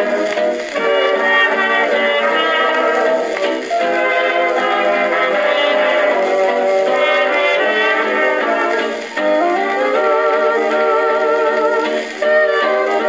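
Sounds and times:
old dance band record: 0.0s - 13.0s.

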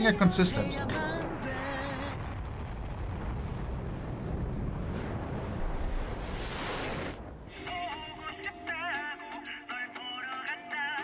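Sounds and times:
rumbling explosion: 0.8s - 8.3s
song: 7.5s - 11.0s.

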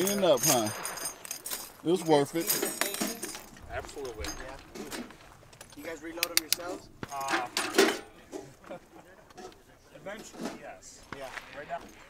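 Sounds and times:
light clicks: 5.6s - 6.7s.

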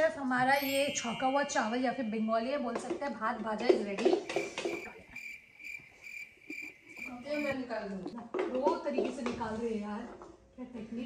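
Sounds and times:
cricket chirping: 4.1s - 7.6s.

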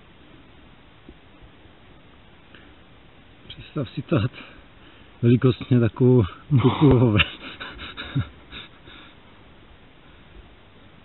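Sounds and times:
faint background hiss: 0.0s - 11.0s
soft breaths: 4.3s - 5.2s, 7.4s - 9.4s
person laughing: 6.5s - 9.1s.

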